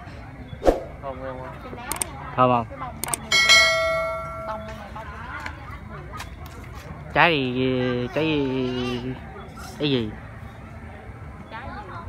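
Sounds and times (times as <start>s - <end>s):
bright bell-like ding: 3.3s - 4.8s.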